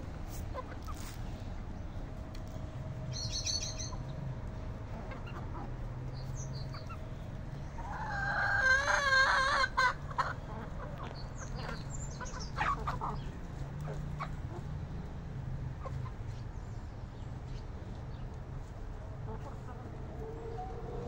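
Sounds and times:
chickens clucking: 0:00.0 - 0:01.6, 0:03.2 - 0:15.0, 0:15.7 - 0:16.5, 0:17.4 - 0:21.0.

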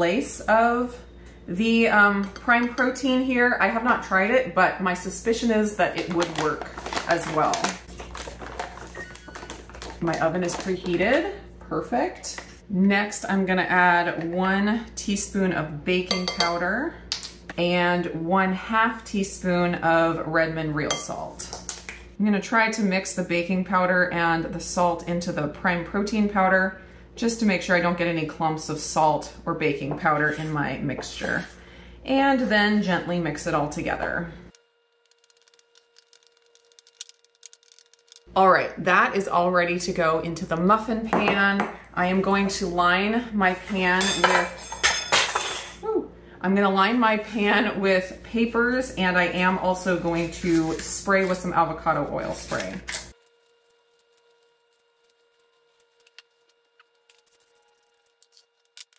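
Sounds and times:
spatula stirring batter in bowl: 0:34.9 - 0:38.3, 0:52.3 - 0:58.9.

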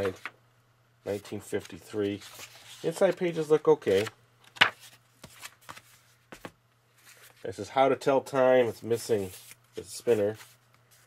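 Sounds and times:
book pages flicking and rustling: 0:03.8 - 0:07.4.

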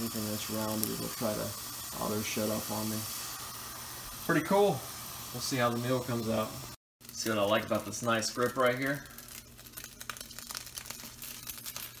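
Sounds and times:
hot liquid crackling and sizzling: 0:00.0 - 0:12.0.

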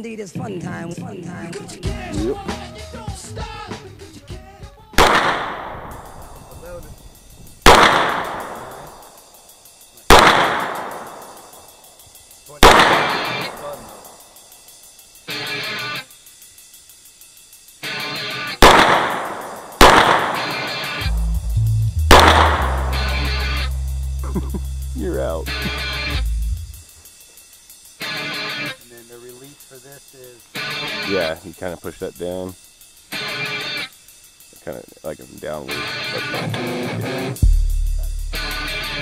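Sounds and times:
pistol shots echoing: 0:05.0 - 0:06.4, 0:07.6 - 0:09.2, 0:10.1 - 0:11.8, 0:12.6 - 0:14.1, 0:18.6 - 0:21.0, 0:22.1 - 0:23.4
low steady sound: 0:18.8 - 0:28.0.

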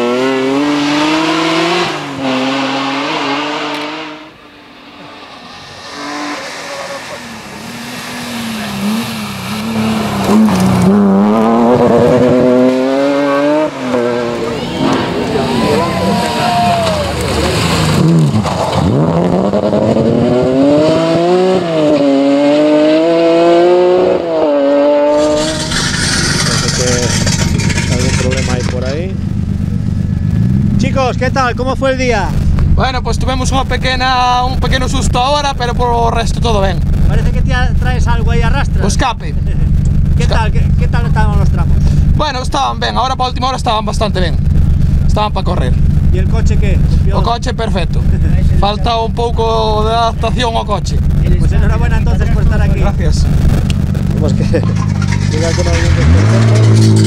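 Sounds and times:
rally car engine revving: 0:00.0 - 0:57.0.

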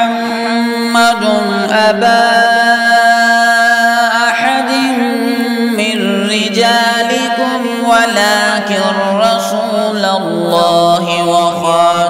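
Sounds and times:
man chanting melodically: 0:00.0 - 0:12.0.

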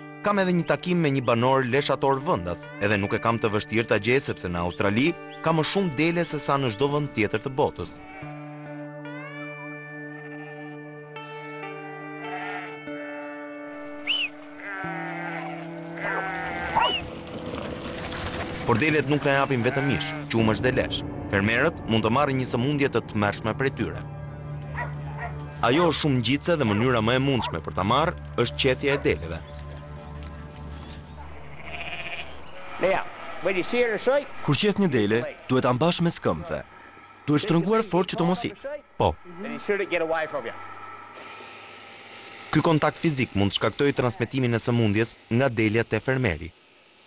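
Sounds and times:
background music of sustained chords: 0:00.0 - 0:45.6
sheep bleating: 0:07.8 - 0:08.8, 0:12.2 - 0:13.0, 0:14.0 - 0:17.1, 0:19.1 - 0:20.4, 0:31.2 - 0:36.5.

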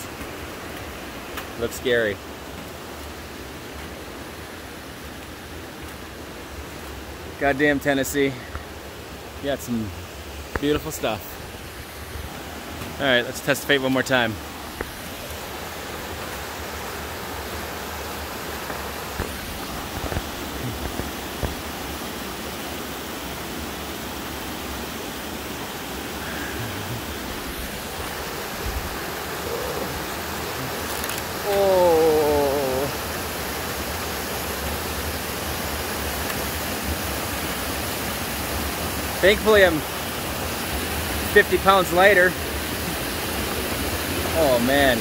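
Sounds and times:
creek rushing through rapids: 0:00.0 - 0:45.0
person's wavering vocal cry: 0:26.2 - 0:27.2, 0:29.4 - 0:30.8, 0:31.4 - 0:33.0.

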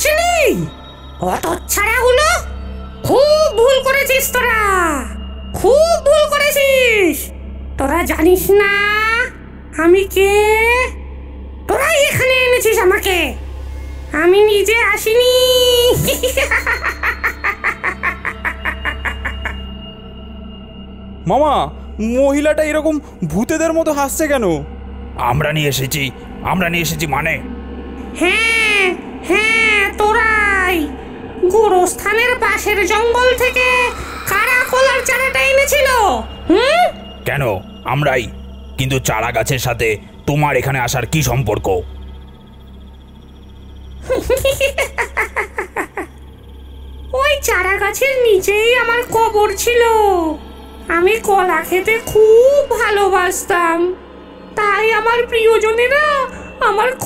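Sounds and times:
man cackling in cartoon voice: 0:16.2 - 0:19.6.

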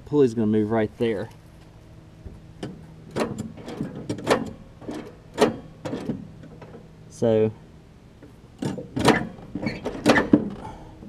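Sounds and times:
steady low hum: 0:00.0 - 0:11.0
metal clanks and knocks: 0:02.3 - 0:06.9, 0:08.6 - 0:10.8.

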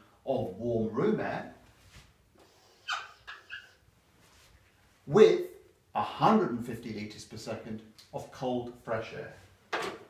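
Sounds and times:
marker squeaking on whiteboard: 0:02.4 - 0:03.9.

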